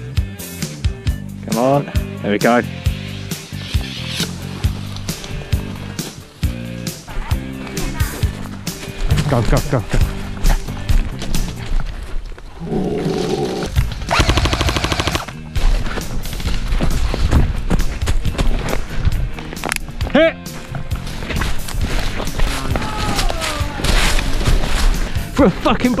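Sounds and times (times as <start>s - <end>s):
airsoft guns firing: 14.1s - 15.3s
footsteps running through dry leaves: 15.3s - 19.5s, 20.8s - 25.6s.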